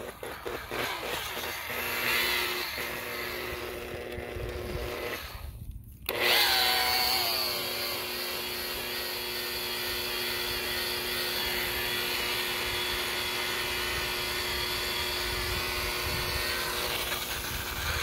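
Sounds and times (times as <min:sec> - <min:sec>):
rotary buffer running: 0:00.0 - 0:18.0.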